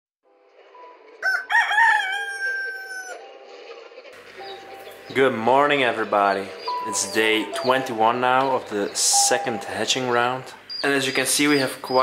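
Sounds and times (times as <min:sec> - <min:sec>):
rooster crowing: 0:01.2 - 0:03.3.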